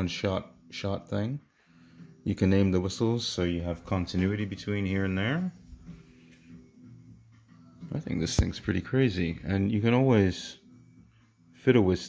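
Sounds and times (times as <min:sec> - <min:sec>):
faint music with low held notes: 0:00.0 - 0:12.0.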